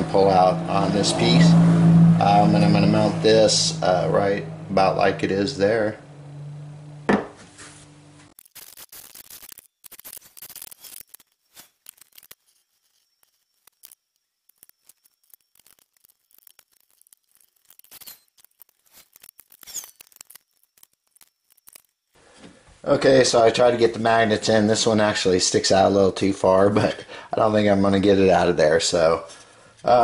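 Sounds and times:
small parts clicking and tapping: 8.4s - 22.2s.

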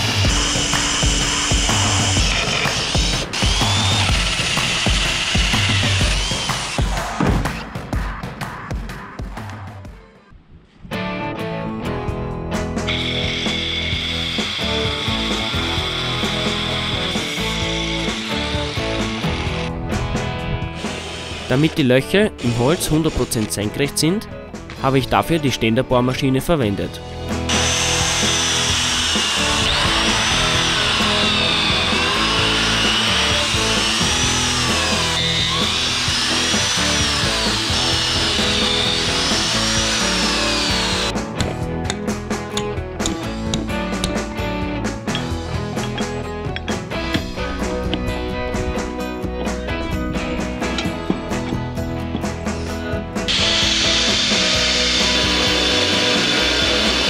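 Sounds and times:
angle grinder whine: 0.0s - 7.2s, 12.9s - 19.8s, 20.7s - 21.8s, 27.1s - 41.2s, 52.6s - 57.0s
power tool working timber: 0.0s - 7.2s, 12.8s - 19.8s, 20.6s - 23.7s, 27.1s - 42.2s, 49.5s - 57.0s
background music: 0.0s - 57.0s.

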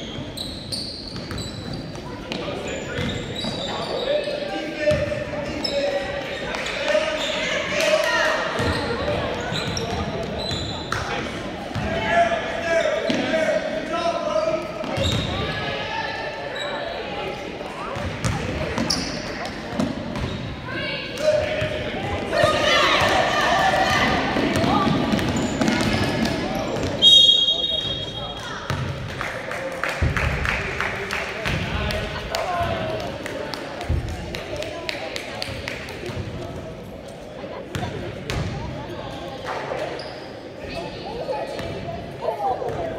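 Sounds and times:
referee's whistle: 27.0s - 28.4s.

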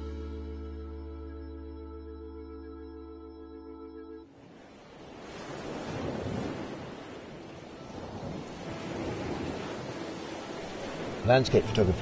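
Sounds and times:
held music chord: 0.0s - 4.2s
waves breaking on rocky shore: 4.4s - 12.0s.

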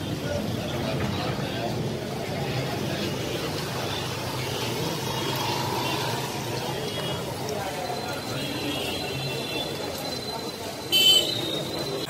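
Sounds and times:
motorbikes and traffic: 0.0s - 12.0s.

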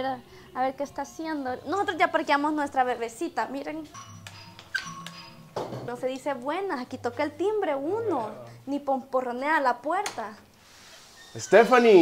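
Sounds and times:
electronic doorbell chime: 3.9s - 4.3s.

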